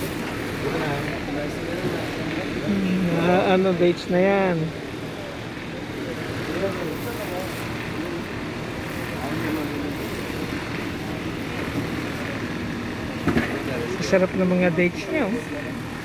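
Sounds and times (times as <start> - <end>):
distant voices talking: 0.0 - 16.0.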